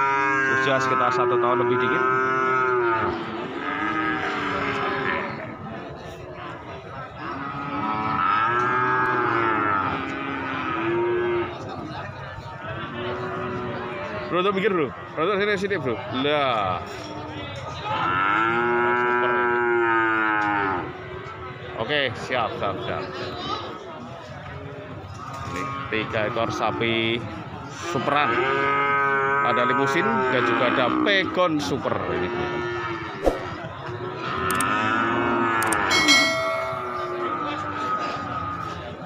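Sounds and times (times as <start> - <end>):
click and bell-like chime: 35.6 - 37.2.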